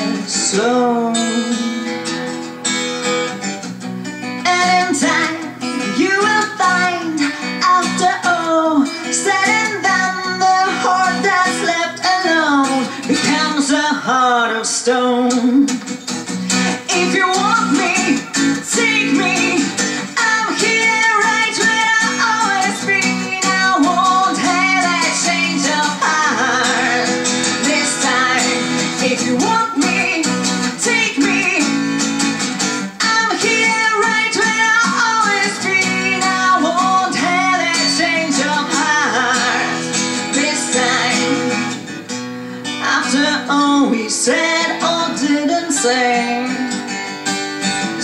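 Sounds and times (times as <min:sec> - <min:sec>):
woman singing: 0:00.0 - 0:02.0, 0:04.4 - 0:32.2, 0:33.0 - 0:41.8, 0:42.6 - 0:47.0
strummed acoustic guitar: 0:00.0 - 0:48.0.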